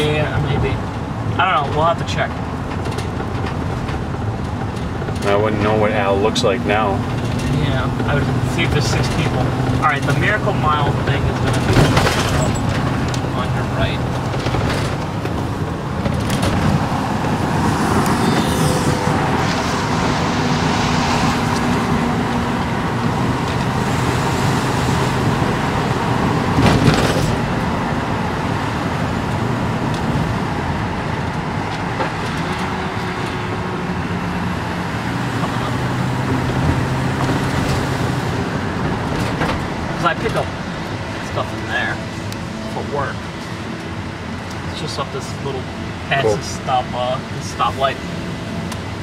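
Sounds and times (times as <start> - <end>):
car engine drone and road noise: 0.0 - 49.0.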